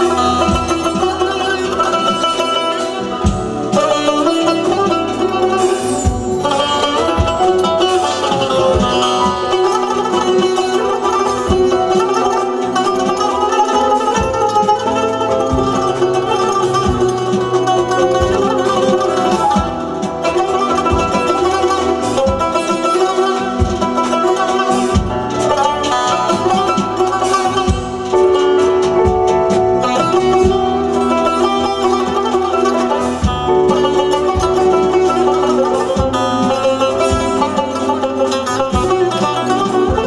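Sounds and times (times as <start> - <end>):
band accompaniment: 0.0 - 40.0
plucked string melody: 0.0 - 40.0
steady low beat: 0.0 - 40.0.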